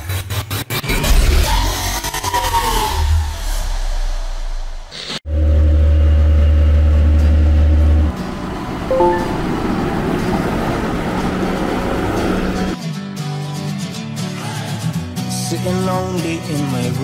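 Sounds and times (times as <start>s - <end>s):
short tones: 8.9s - 10.1s
loud low hum: 8.9s - 12.5s.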